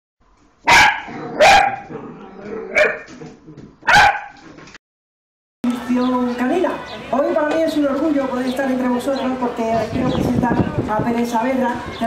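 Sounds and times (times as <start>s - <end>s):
dog barking: 0.6s - 2.1s, 2.7s - 3.1s, 3.8s - 4.4s.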